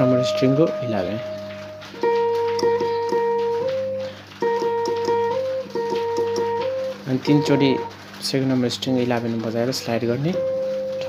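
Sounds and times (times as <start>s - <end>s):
electric guitar lead note: 0.0s - 8.0s.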